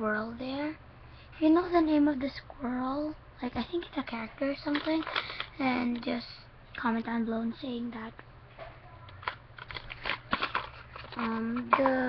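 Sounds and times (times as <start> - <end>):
plastic packaging crackling: 4.6 - 5.5, 9.1 - 11.9.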